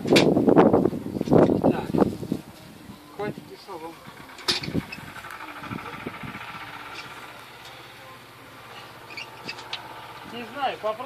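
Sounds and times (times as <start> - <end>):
engine idling: 1.6 - 11.0.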